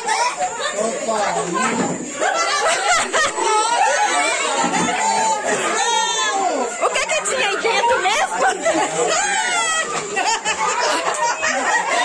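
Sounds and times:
children talking and shouting: 0:00.0 - 0:12.0.

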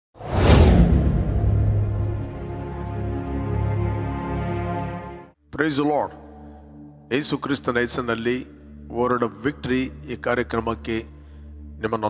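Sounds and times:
cinematic whoosh: 0:00.2 - 0:03.6
deep low music drone: 0:00.6 - 0:05.3.

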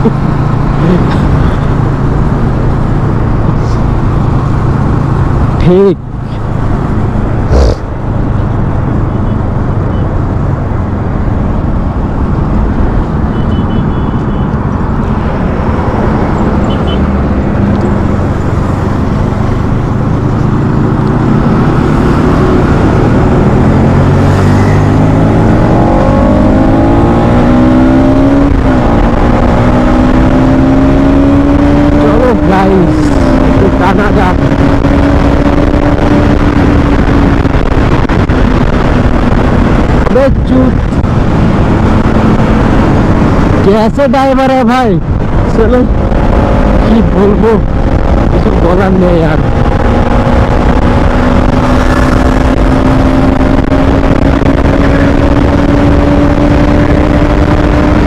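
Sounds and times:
motorcycle engine accelerating: 0:00.0 - 0:09.8, 0:14.5 - 0:43.8, 0:45.0 - 0:58.0
wind and road rush: 0:00.0 - 0:58.0.

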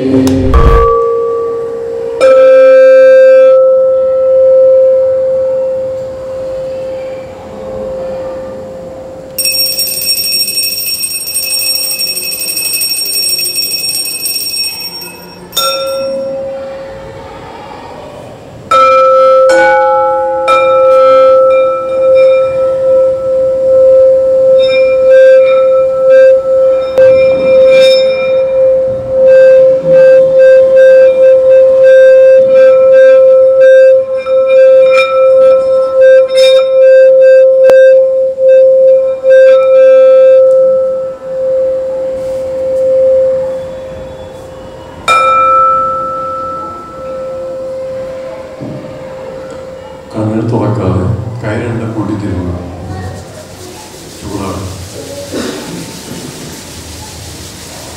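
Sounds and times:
higher metallic ring: 0:00.0 - 0:08.5, 0:09.4 - 0:17.1, 0:18.7 - 0:50.1
singing bowl struck with mallet: 0:00.1 - 0:04.9.

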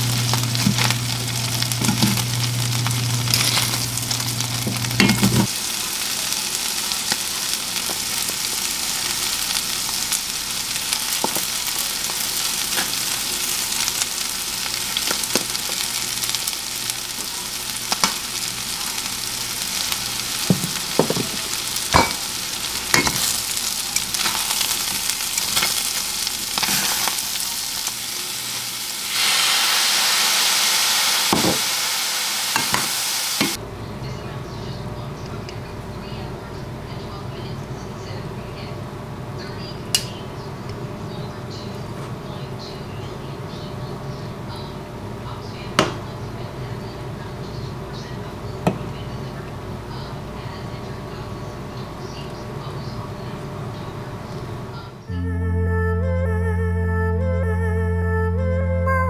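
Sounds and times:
food sizzling in a skillet: 0:00.0 - 0:33.6
metal tongs clacking on pan: 0:22.9 - 0:23.3.

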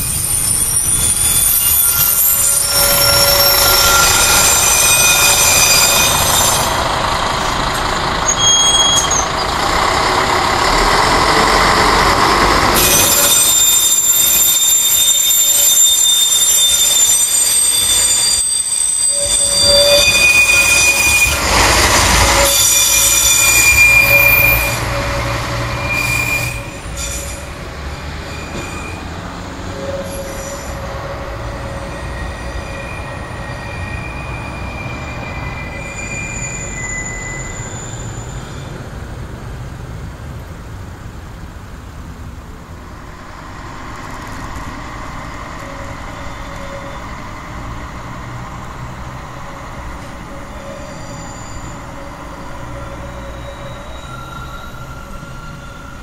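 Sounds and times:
train wheels squealing: 0:00.0 - 0:09.8, 0:11.1 - 0:38.9, 0:43.6 - 0:56.0
railcar running rumble: 0:00.0 - 0:56.0.

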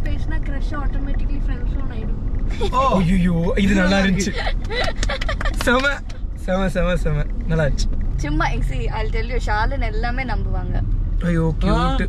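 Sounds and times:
car cabin low rumble: 0:00.0 - 0:12.0
people laughing and talking: 0:02.5 - 0:06.1.

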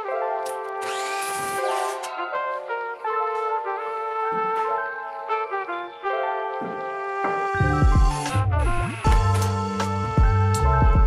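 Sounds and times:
brass-led music: 0:00.0 - 0:11.0
mitre saw cutting wood: 0:00.8 - 0:02.2.

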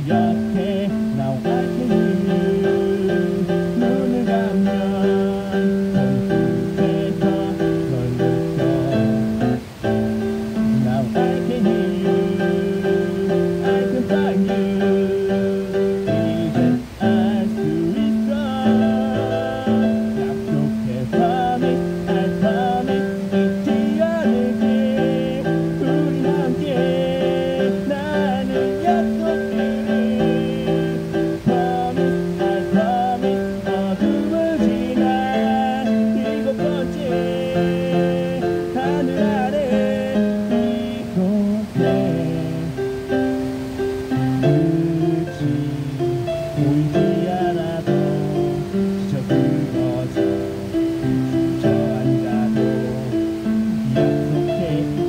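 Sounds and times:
electronic keyboard song: 0:00.0 - 0:55.0.

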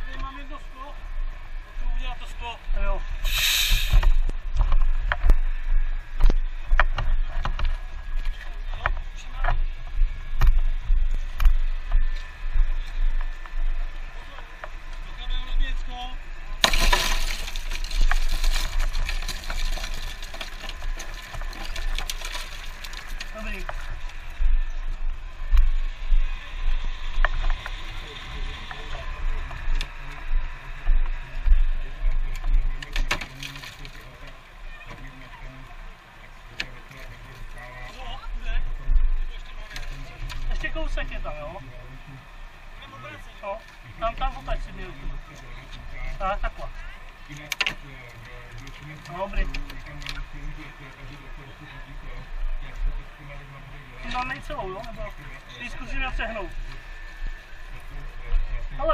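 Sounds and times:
car window glass shattering: 0:16.6 - 0:23.1.

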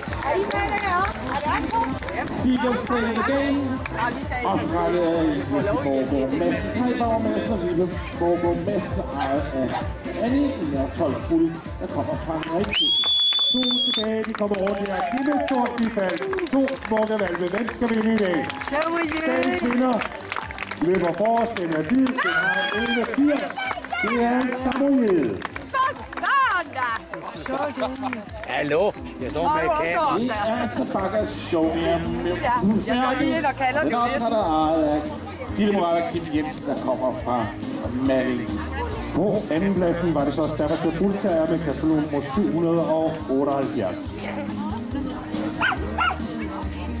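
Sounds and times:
background music: 0:00.0 - 0:47.0
faint outdoor crowd noise: 0:00.0 - 0:47.0
dog yipping: 0:45.6 - 0:46.3.

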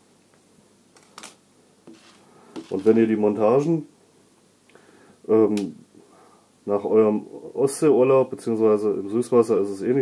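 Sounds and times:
faint handling of wire pieces: 0:01.0 - 0:03.1.

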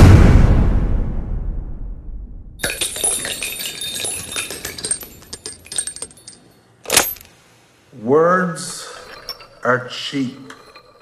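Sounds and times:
metal cartridges clinking on wood: 0:02.6 - 0:07.4, 0:08.6 - 0:11.0.

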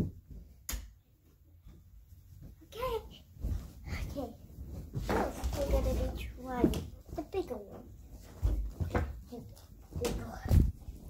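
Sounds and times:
child speaking: 0:02.6 - 0:03.3, 0:03.9 - 0:04.4, 0:05.1 - 0:07.9, 0:09.3 - 0:10.7.

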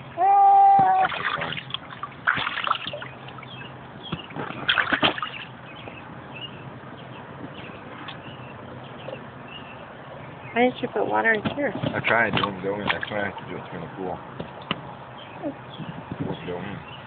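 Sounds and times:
pool water splashing: 0:00.0 - 0:06.6, 0:12.0 - 0:13.9.

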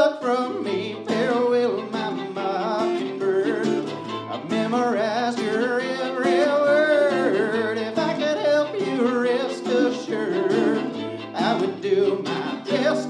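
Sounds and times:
acoustic guitar: 0:00.0 - 0:13.0
fiddle melody: 0:00.0 - 0:13.0
mandolin: 0:00.0 - 0:13.0.

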